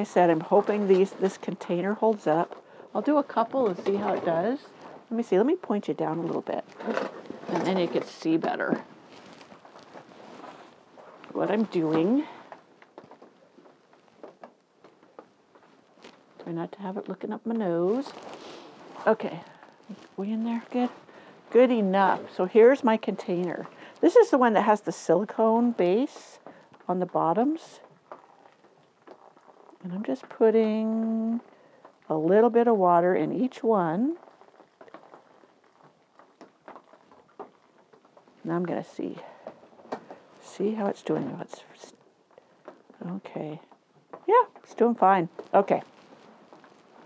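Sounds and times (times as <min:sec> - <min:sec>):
small ticks and splashes: 0:33.3 - 0:40.8.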